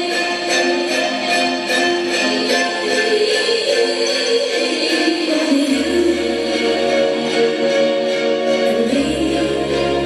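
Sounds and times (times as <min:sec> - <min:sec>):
recorded song playing: 0:00.0 - 0:10.0
person singing: 0:02.4 - 0:08.0, 0:08.6 - 0:10.0.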